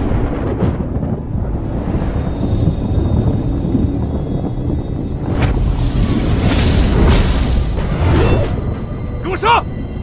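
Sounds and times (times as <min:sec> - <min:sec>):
low rumbling wind-like noise: 0:00.0 - 0:10.0.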